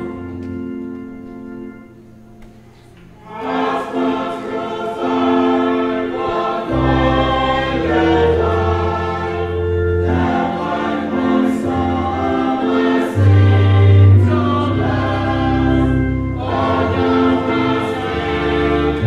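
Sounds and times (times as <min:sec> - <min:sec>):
congregation singing a hymn: 0:00.0 - 0:01.9, 0:03.1 - 0:19.0
instrumental accompaniment chords: 0:00.0 - 0:19.0.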